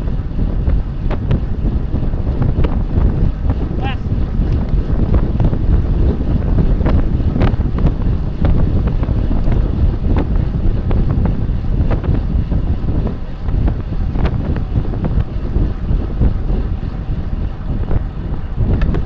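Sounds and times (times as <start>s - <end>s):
wind rumble on microphone: 0.0s - 19.0s.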